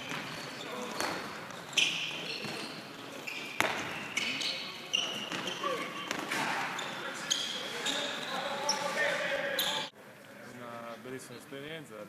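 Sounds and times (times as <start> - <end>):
ball bouncing: 0.0 - 2.6, 3.6 - 4.0, 5.3 - 6.5
shoes squeaking on court floor: 0.0 - 9.9.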